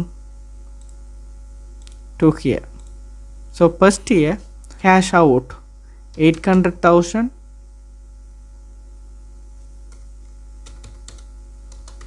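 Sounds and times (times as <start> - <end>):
low electrical hum: 0.0 - 12.0
keyboard keystrokes: 6.1 - 6.6, 9.9 - 12.0.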